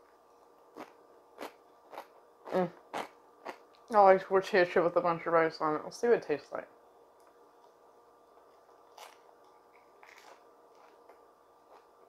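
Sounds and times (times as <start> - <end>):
chewing a crunchy chip: 0.7 - 3.8, 8.8 - 12.0.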